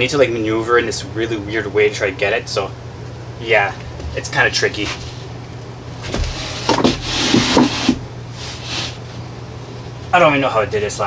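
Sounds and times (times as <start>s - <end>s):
drywall board scraping: 6.0s - 9.1s.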